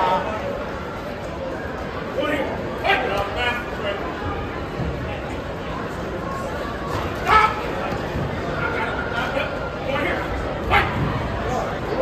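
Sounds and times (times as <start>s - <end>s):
chatter in a hall: 0.0s - 12.0s
voices shouting: 7.2s - 7.8s.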